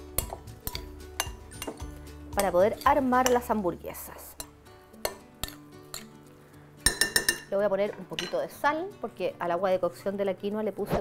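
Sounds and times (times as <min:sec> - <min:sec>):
soft background music: 0:00.0 - 0:11.0
metal spoon clinking on glass bowl: 0:00.2 - 0:03.6, 0:04.4 - 0:06.2, 0:06.8 - 0:08.5.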